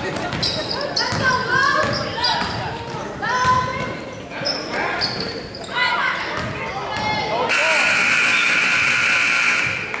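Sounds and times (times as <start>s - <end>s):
scoreboard buzzer blare: 7.5s - 9.9s.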